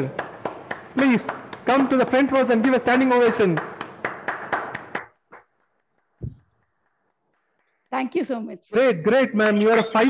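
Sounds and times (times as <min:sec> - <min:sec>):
hand clapping: 0:00.0 - 0:08.0.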